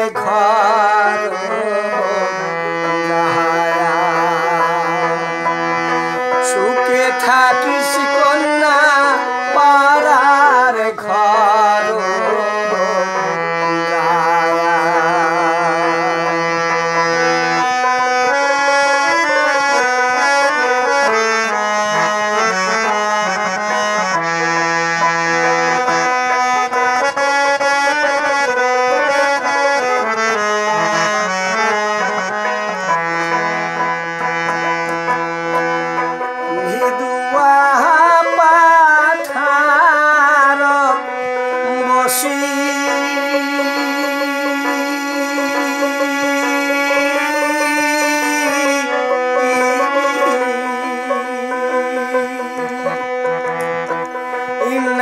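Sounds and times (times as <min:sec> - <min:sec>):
man singing folk song: 0:00.0 - 0:05.3, 0:06.3 - 0:16.4, 0:36.5 - 0:53.4, 0:54.2 - 0:55.0
plucked lute: 0:00.0 - 0:55.0.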